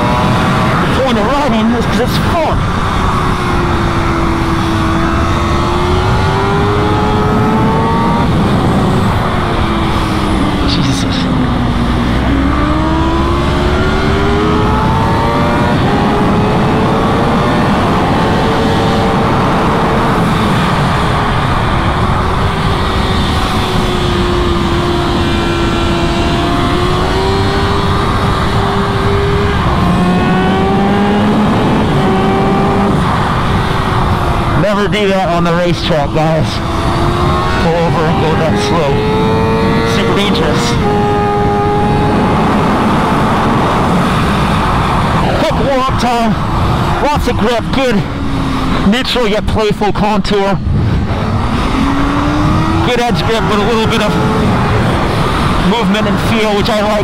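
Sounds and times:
wind rushing: 0.0 - 48.9, 50.5 - 56.2
motorcycle engine at high revs: 0.0 - 57.0.

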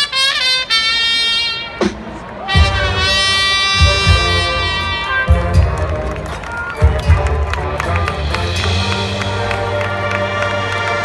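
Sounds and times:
marching band playing: 0.0 - 11.0
heavy low drum hit: 1.8 - 5.9.

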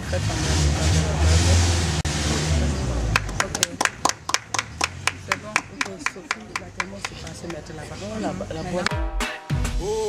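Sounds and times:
people clapping hands: 3.1 - 7.9, 8.8 - 9.0.

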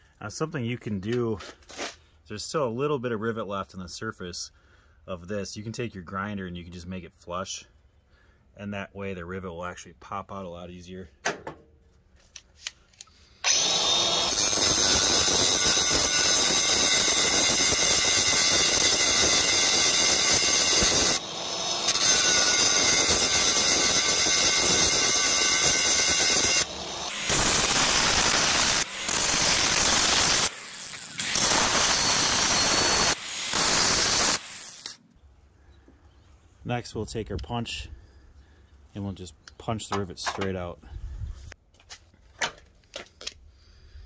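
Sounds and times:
angle grinder grinding steel: 13.4 - 35.0.

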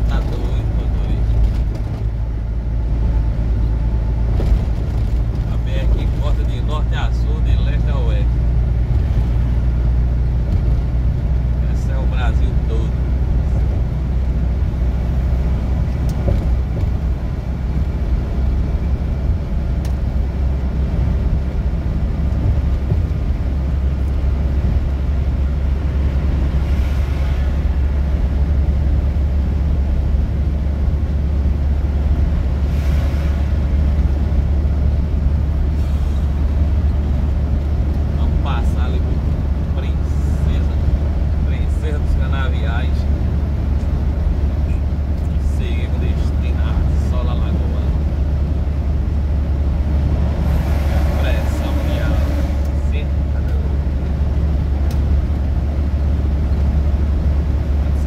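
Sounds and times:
truck engine and tyre drone: 0.0 - 58.0.

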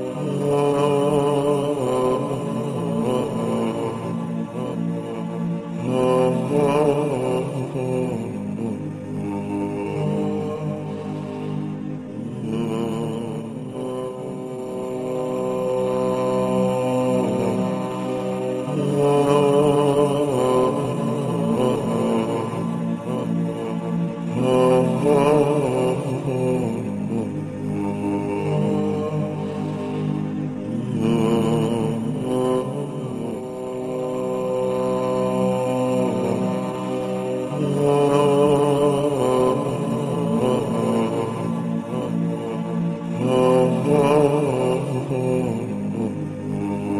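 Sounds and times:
devotional vocal chant: 0.0 - 46.9.

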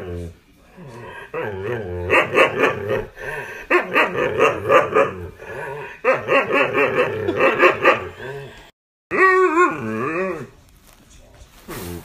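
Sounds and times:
dog howling: 0.0 - 8.4, 9.1 - 10.5.

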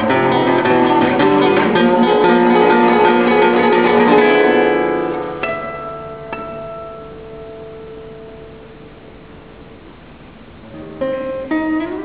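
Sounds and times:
classical guitar note ringing: 0.0 - 12.0.

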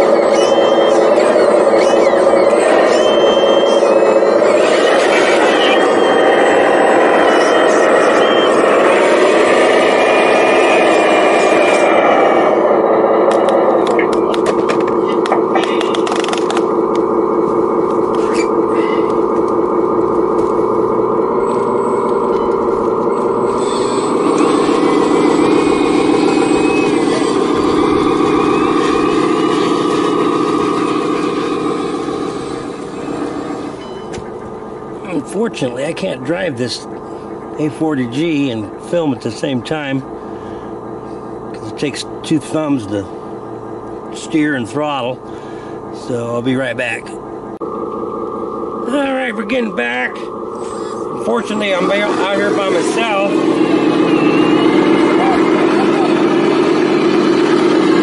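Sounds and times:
motor and gear whine: 0.0 - 58.0
sharp clicks: 13.2 - 17.1.

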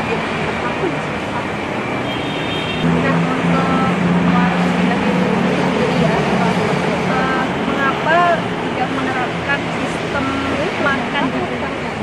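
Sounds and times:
road traffic noise: 0.0 - 12.0
vehicle engine hum: 0.0 - 12.0
faint voices talking: 2.8 - 12.0.

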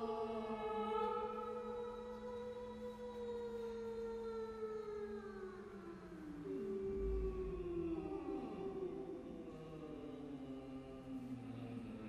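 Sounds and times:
choir holding sustained notes: 0.0 - 12.0.

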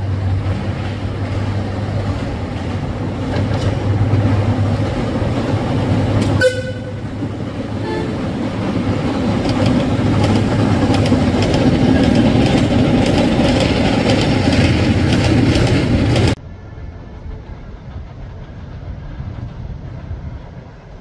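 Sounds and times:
train wheels clattering on rails: 0.0 - 16.4
train horn toots: 6.3 - 7.2, 7.8 - 8.2.

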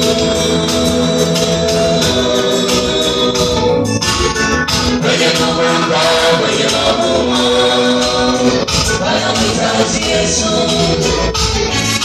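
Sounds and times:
drum kit beat: 0.0 - 12.0
keyboard organ-like chords: 0.0 - 12.0.

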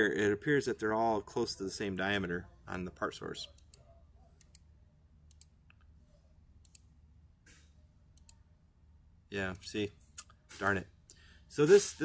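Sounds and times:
computer mouse clicks: 5.3 - 5.9, 6.6 - 6.9.

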